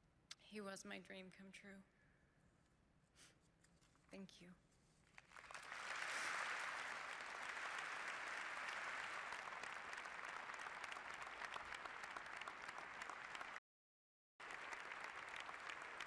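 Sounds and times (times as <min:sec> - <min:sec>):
large audience applauding: 0:05.1 - 0:13.6, 0:14.4 - 0:16.0.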